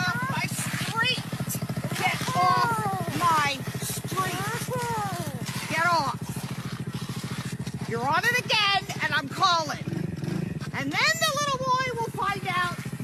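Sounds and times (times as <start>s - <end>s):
small motorbike engine idling: 0.0s - 13.0s.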